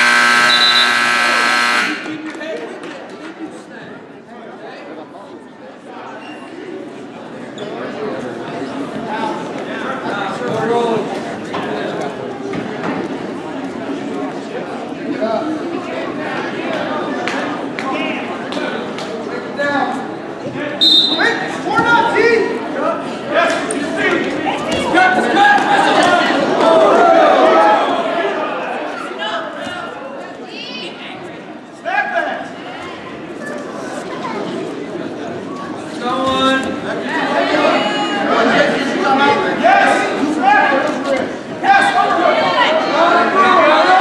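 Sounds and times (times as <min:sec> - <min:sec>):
referee's whistle blast: 0:00.0 - 0:02.2, 0:20.8 - 0:21.4
scoreboard buzzer: 0:00.0 - 0:02.2
voices shouting in a gym: 0:20.6 - 0:44.0.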